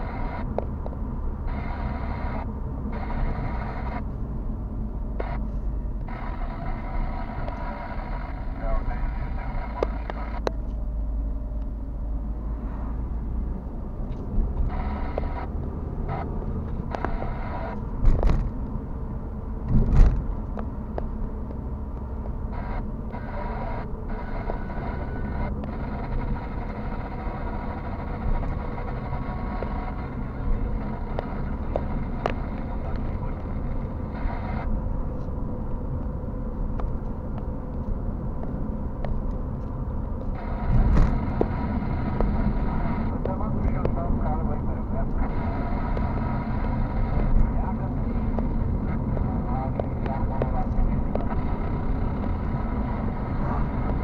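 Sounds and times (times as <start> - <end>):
engine and tyres rumbling: 0.0 - 54.0
car thumping over bumps: 19.6 - 22.4.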